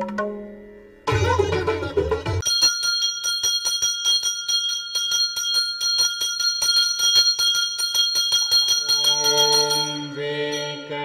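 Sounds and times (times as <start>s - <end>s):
brass hand bell ringing: 2.4s - 11.0s.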